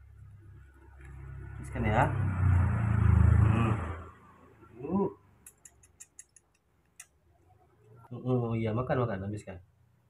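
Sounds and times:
vehicle passing by: 0.5 - 5.2.

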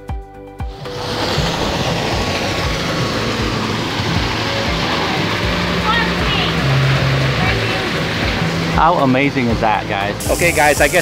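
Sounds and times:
background music: 0.0 - 11.0
waterfall pouring into pool: 0.6 - 11.0.

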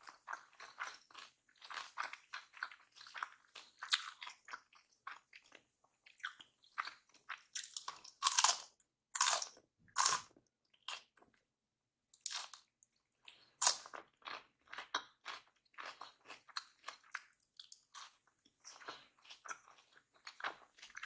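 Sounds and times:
wet chewing crunches: 0.0 - 10.3.

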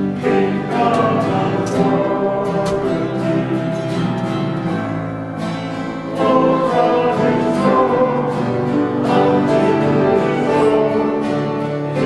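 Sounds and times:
group of voices singing: 0.0 - 4.1, 5.8 - 12.0
acoustic guitars strummed: 0.0 - 12.0.

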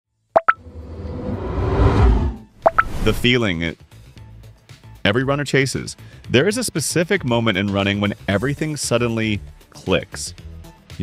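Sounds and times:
whoosh with deep rumble: 0.6 - 3.4.

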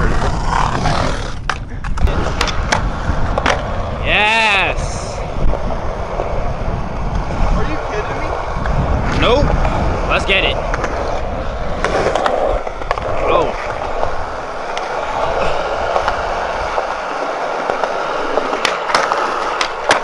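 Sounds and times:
skateboard wheels rolling on concrete: 0.0 - 20.0.

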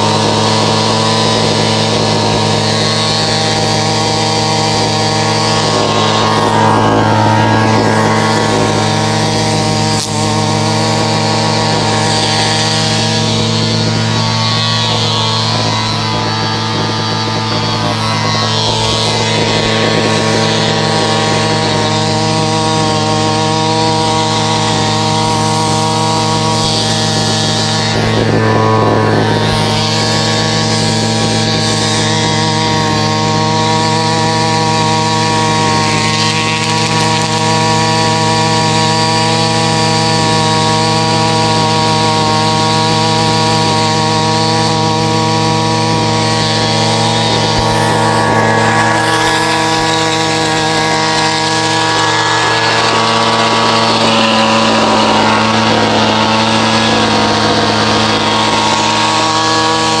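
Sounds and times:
string trimmer engine running: 0.0 - 60.0.

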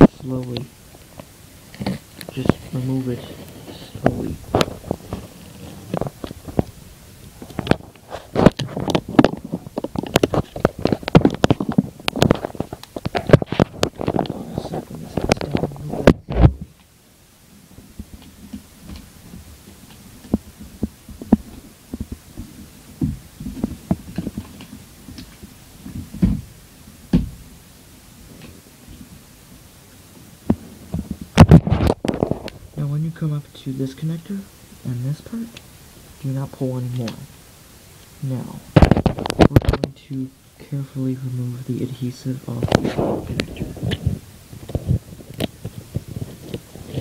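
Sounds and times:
tape peeling crackles: 0.0 - 16.9, 30.9 - 32.6
soft handling noise: 0.0 - 17.0, 41.0 - 47.0.

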